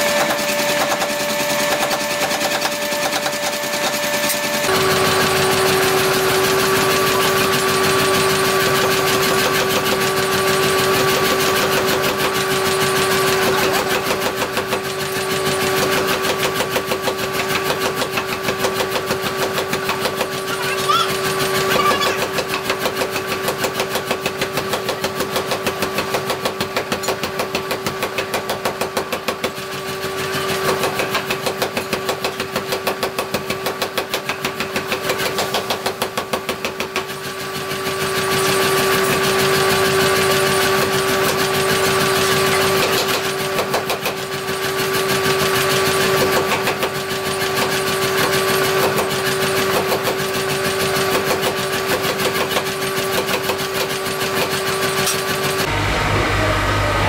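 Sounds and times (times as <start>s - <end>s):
steady machine hum: 0.0s - 11.6s, 55.5s - 57.0s
power hammer pounding steel: 0.0s - 57.0s.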